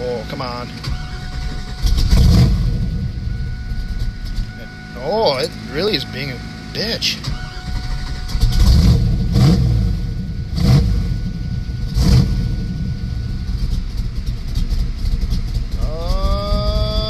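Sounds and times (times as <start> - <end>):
car engine idling rough: 0.0 - 17.0.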